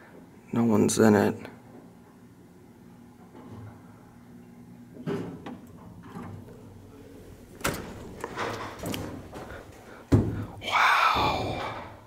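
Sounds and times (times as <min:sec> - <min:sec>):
faint low elevator hum: 0:00.0 - 0:12.0.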